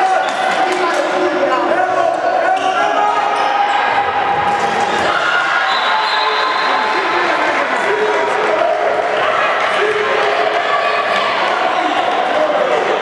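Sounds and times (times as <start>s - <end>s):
voices calling in hall: 0.0s - 13.0s.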